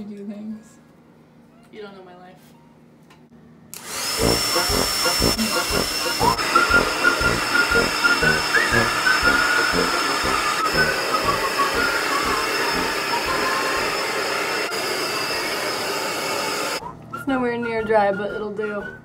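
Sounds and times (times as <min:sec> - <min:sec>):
hair dryer blowing: 0:03.8 - 0:16.8.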